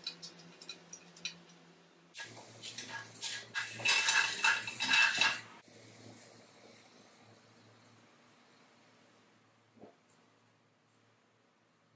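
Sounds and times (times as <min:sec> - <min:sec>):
metal parts clinking and rattling: 0:00.0 - 0:01.6, 0:02.8 - 0:05.5.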